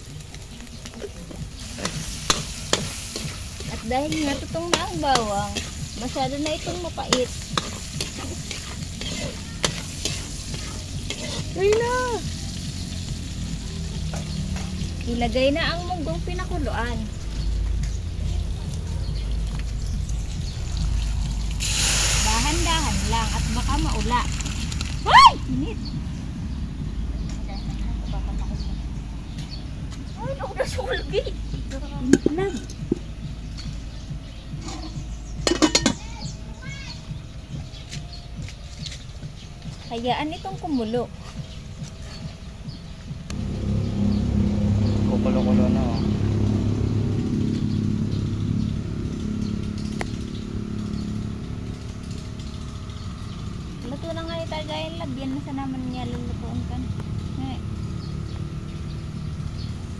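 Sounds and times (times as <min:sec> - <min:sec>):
garlic sizzling in oil: 0:01.4 - 0:15.0, 0:20.6 - 0:25.2
metal spatula scraping wok: 0:01.6 - 0:12.5
metal pot clattering: 0:34.8 - 0:36.1
spatula clinking on pan: 0:35.5 - 0:36.0.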